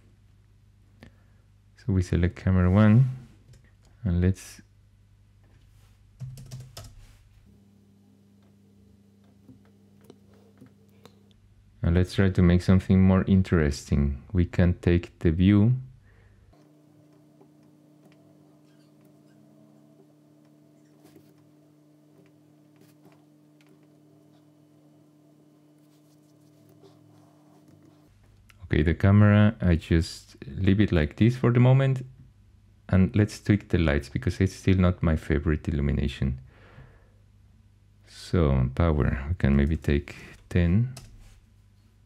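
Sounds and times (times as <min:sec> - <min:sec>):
faint low hum: 0:00.0 - 0:42.0
computer keyboard typing: 0:06.2 - 0:07.0.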